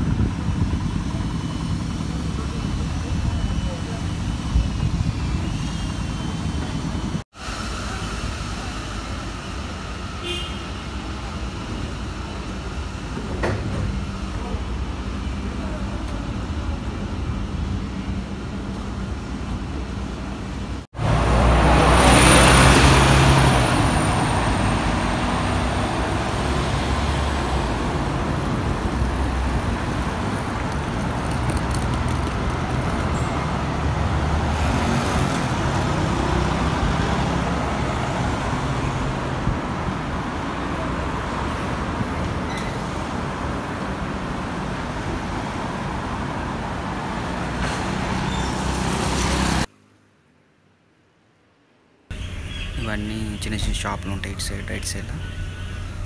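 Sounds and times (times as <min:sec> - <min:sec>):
bus engine with high whine: 0:00.0 - 0:56.0
road traffic: 0:00.0 - 0:56.0.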